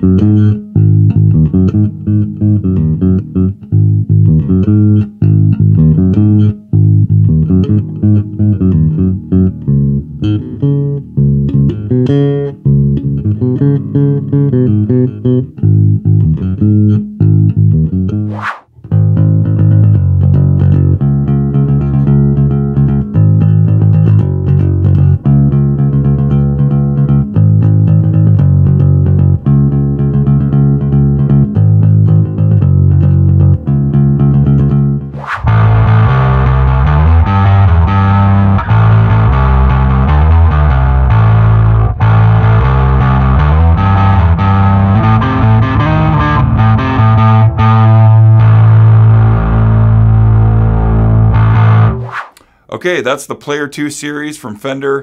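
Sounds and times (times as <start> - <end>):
electric bass line: 0.0 - 52.6.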